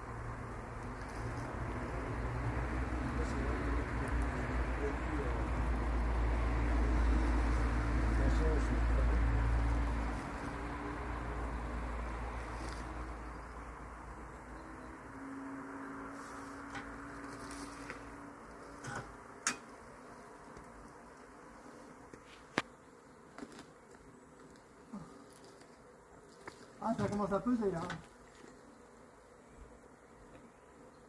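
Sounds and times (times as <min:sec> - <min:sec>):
bees buzzing: 0:00.0 - 0:31.0.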